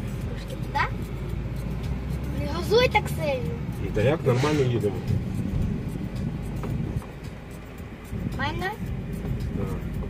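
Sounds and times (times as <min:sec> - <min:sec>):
background music: 0:00.0 - 0:10.0
car engine and road noise: 0:00.0 - 0:10.0.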